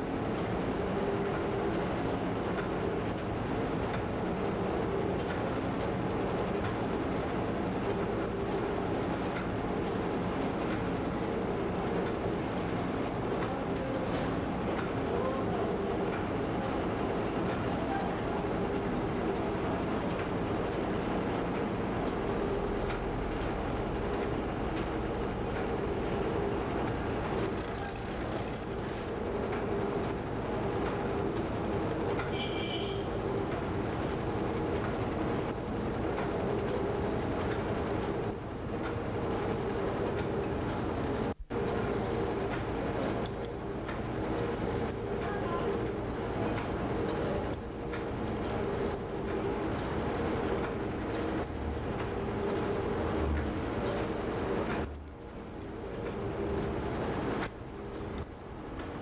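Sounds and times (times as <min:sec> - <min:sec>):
mechanical hum: 0:00.0 - 0:59.0.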